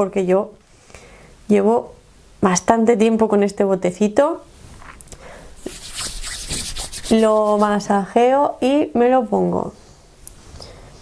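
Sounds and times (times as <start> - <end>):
palms rubbing together: 5.6 - 8.0.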